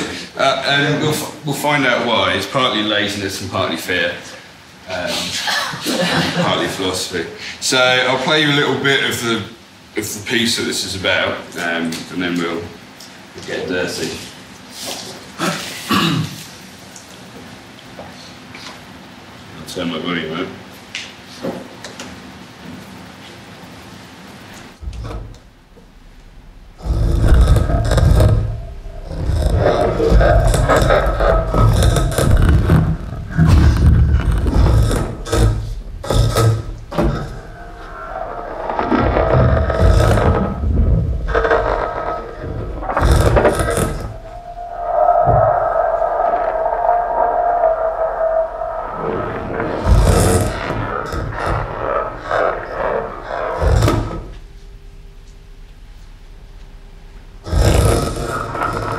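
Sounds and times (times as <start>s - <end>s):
booming electronic textures: 24.7s - 58.9s
sustained ringing tones: 24.8s - 51.0s.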